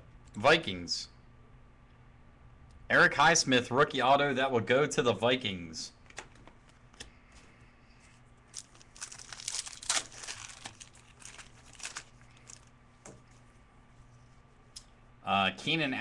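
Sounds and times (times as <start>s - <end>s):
foil wrappers crinkling and tearing: 8.5s - 12.7s.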